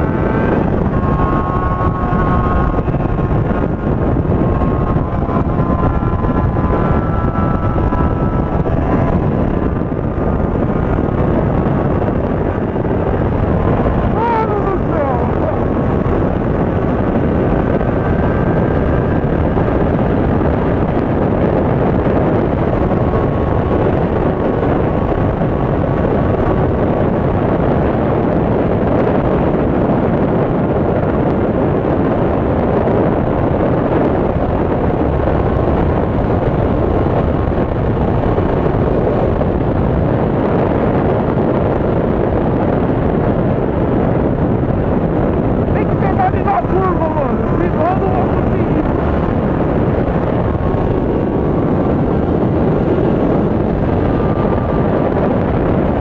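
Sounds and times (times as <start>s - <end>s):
motorcycle engine running: 0.0s - 29.8s
wind rush on microphone: 0.0s - 56.0s.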